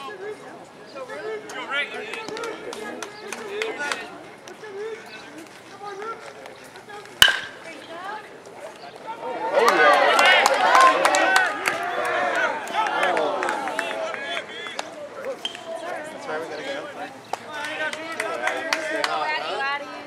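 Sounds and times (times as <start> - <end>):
metal bat hitting ball: 7.2 - 7.6
crowd shouting and cheering: 9.0 - 20.0.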